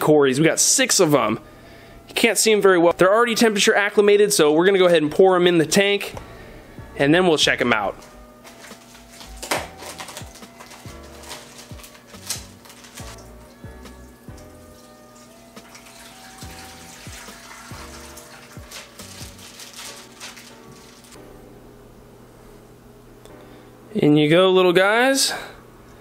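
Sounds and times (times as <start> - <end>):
quiet background music: 0.0 - 26.0
plastic bag rustling: 8.0 - 21.2
water trickling and splashing into bucket: 12.8 - 20.4.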